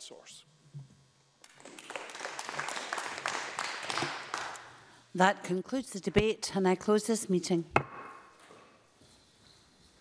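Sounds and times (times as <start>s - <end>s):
people clapping: 1.4s - 4.9s.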